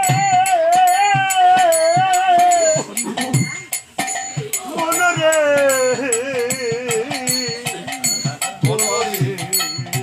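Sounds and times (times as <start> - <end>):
low drum beating: 0.0 - 10.0
small metal hand cymbals: 0.0 - 10.0.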